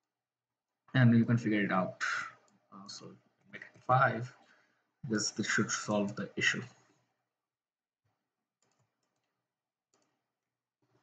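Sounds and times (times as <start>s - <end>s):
keyboard and mouse clicks: 8.6s - 11.0s.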